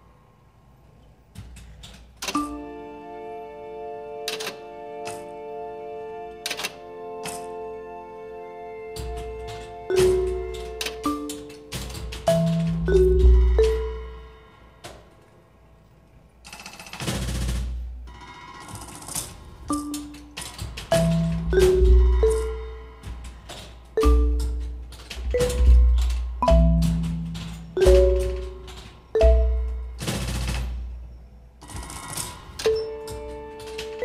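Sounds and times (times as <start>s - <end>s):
robotic marimba playing: 9.9s - 14.4s, 19.7s - 23.0s, 24.0s - 30.0s
rapid machine-driven clattering roll: 16.5s - 29.1s, 29.9s - 34.0s.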